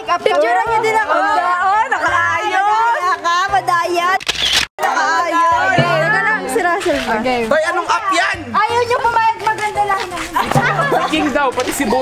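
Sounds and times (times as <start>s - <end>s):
camera shutter click: 4.2s - 4.7s
voices: 4.8s - 12.0s.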